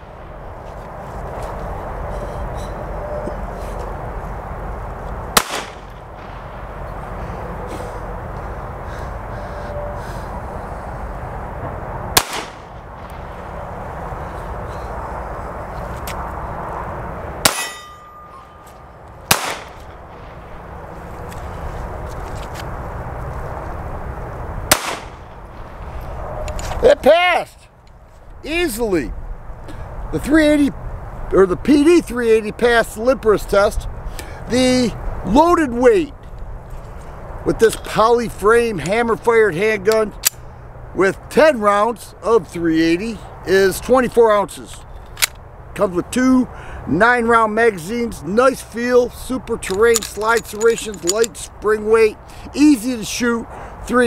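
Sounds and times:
steady rushing noise: 0.0 - 31.4
pistol shots: 5.4 - 5.9, 12.2 - 12.7, 17.4 - 17.9, 19.3 - 19.8, 24.7 - 25.3
ringing tone: 17.6 - 18.8.

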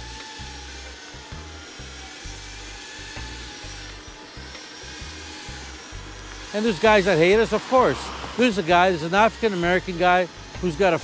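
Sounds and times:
quiet background music: 0.0 - 11.0
steady whirring hum: 0.0 - 11.0.

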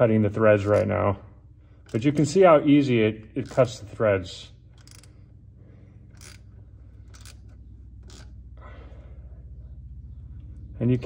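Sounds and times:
steady low hum: 0.0 - 11.0
ratchet clicking: 1.8 - 2.4, 3.3 - 5.4, 6.1 - 8.4.

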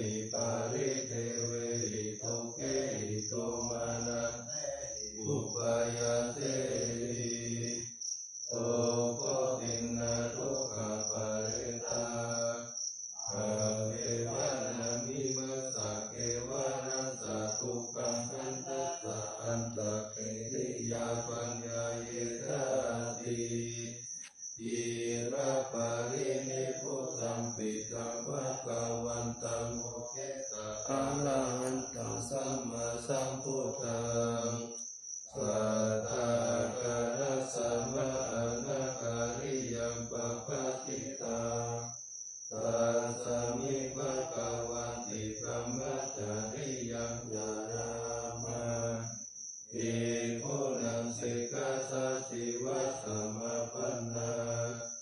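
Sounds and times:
chanted recitation: 0.0 - 55.0.

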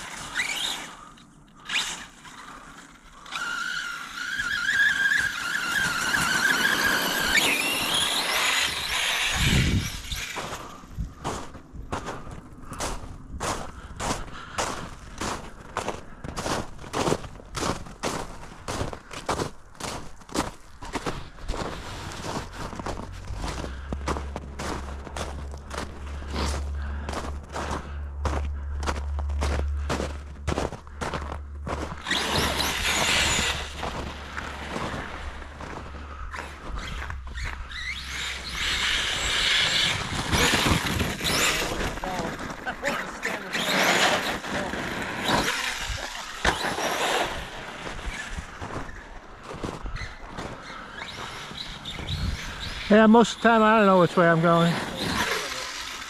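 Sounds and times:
rc truck motor whining: 0.0 - 11.4, 17.0 - 53.4, 54.2 - 56.0
tyres on icy snow: 0.0 - 56.0
footsteps crunching through snow: 5.4 - 55.9.

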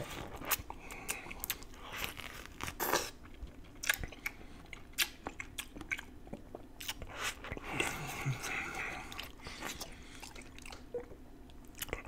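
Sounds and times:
biting and chewing grapefruit: 0.0 - 12.0.

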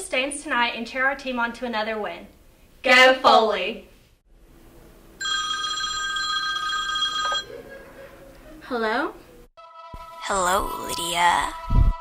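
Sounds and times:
desk telephone ringing: 5.2 - 7.6.

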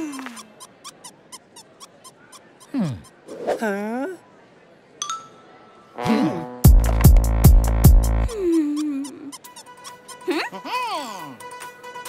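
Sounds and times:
squeaky cartoon voice whine: 0.0 - 3.2, 8.3 - 10.2
faint background music: 8.3 - 12.0.

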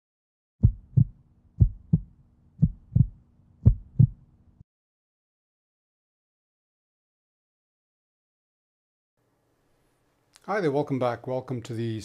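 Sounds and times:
heartbeat thumps: 0.6 - 4.2.

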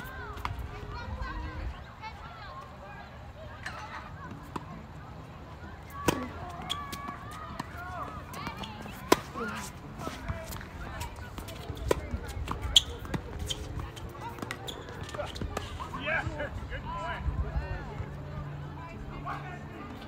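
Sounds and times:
racket hitting tennis ball: 5.9 - 10.7
tennis ball bouncing on court: 6.0 - 9.7, 11.3 - 15.6.

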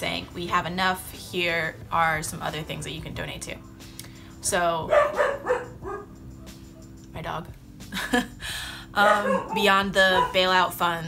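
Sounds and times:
dog barking: 4.9 - 6.1, 9.0 - 10.6.

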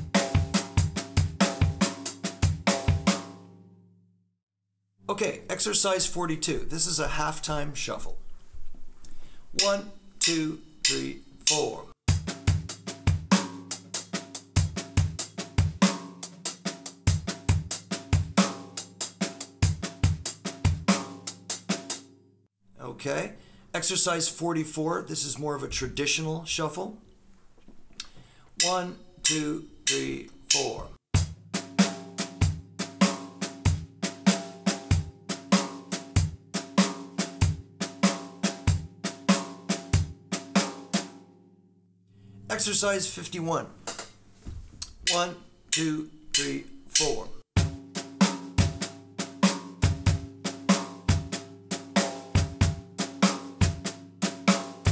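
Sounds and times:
drum kit shuffle groove: 0.0 - 3.4, 9.5 - 22.1, 28.6 - 41.2, 42.5 - 54.9.

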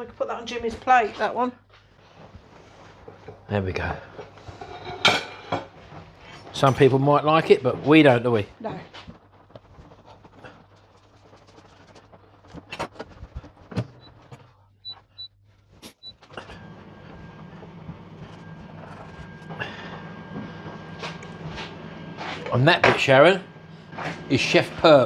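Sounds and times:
appliance hum with faint whine: 0.0 - 25.0.

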